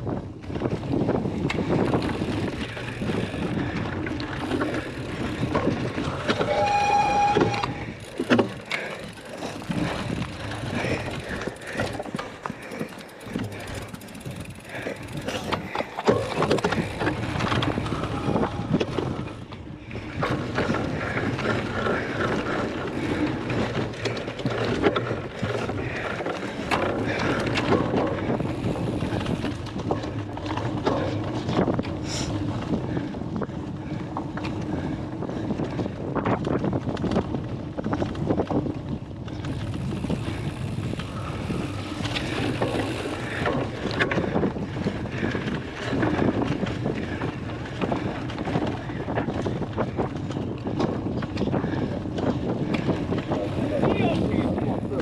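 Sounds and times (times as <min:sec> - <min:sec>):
bike frame rattle: 0:00.0 - 0:55.0
bike tyre rumble on grass: 0:00.0 - 0:55.0
wind rushing over microphone: 0:00.0 - 0:55.0
bike squeal: 0:06.0 - 0:08.5.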